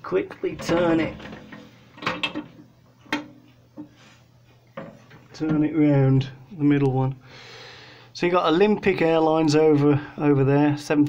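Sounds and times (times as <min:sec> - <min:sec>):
sharp clicks and knocks: 0:00.6 - 0:03.9.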